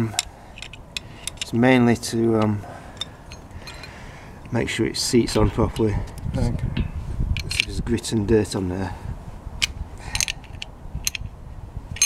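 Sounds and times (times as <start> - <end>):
metal tools clicking and rattling: 0.0 - 1.6, 2.3 - 4.1, 7.4 - 7.8, 10.0 - 11.3.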